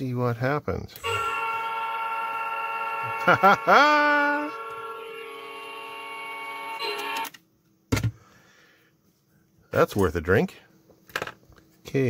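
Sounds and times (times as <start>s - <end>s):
electronic goal horn honking: 1.0s - 7.3s.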